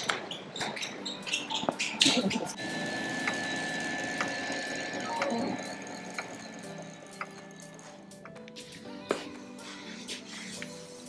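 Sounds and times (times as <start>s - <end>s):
sharp ticking: 1.0s - 8.8s.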